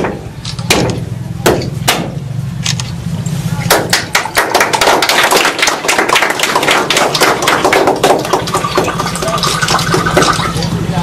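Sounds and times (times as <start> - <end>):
rapid sharp knocks: 0.0 - 2.2, 3.7 - 10.4.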